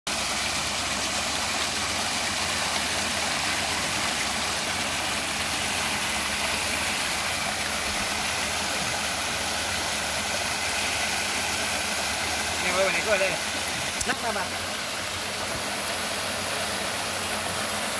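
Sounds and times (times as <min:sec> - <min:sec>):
paddlewheels churning pond water: 0:00.1 - 0:17.9.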